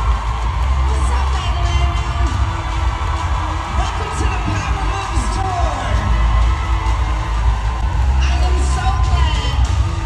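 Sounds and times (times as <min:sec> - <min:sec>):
live music through sound system: 0:00.0 - 0:10.0.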